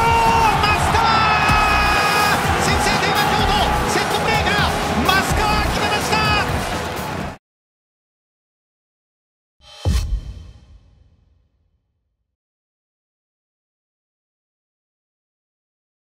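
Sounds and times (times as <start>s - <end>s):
excited drawn-out voices: 0.0s - 6.5s
music: 0.0s - 7.4s, 9.6s - 12.2s.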